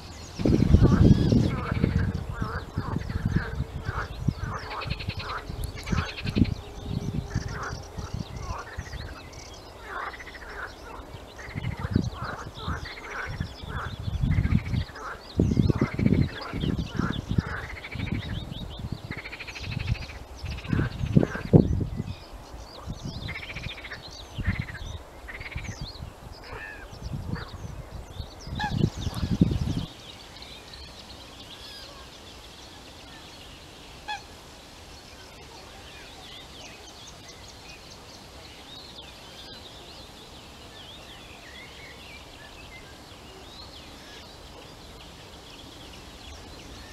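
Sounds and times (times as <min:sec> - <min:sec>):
birds calling: 0:00.0 - 0:46.9
small birds singing: 0:00.0 - 0:46.9.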